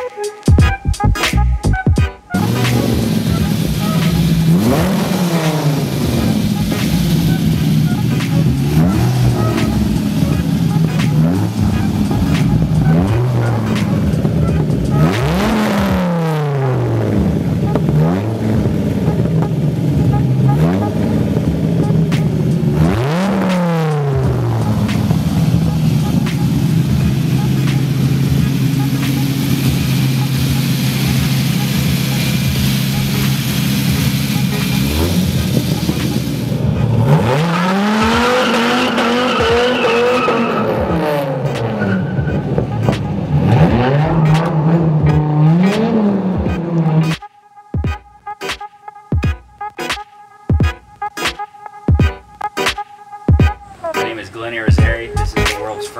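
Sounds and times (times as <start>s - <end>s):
car engine revving: 1.0s - 47.3s.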